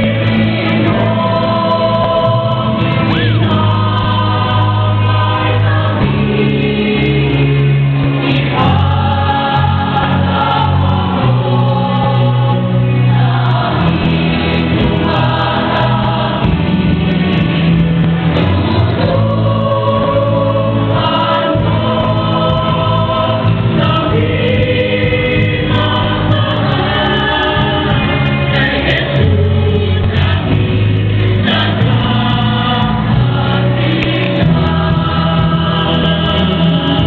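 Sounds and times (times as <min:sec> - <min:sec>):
choir singing a hymn: 0:00.0 - 0:37.0.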